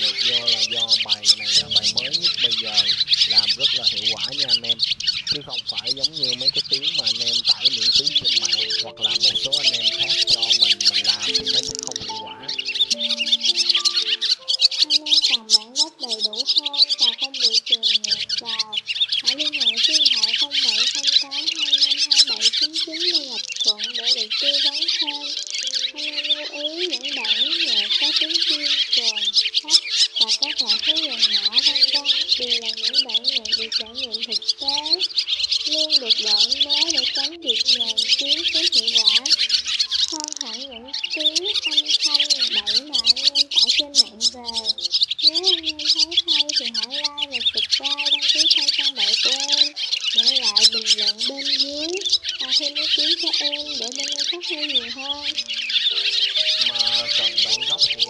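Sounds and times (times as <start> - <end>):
music underneath: 0.0 - 17.3, 21.7 - 43.1, 49.2 - 58.0
swallows twittering: 0.0 - 58.0.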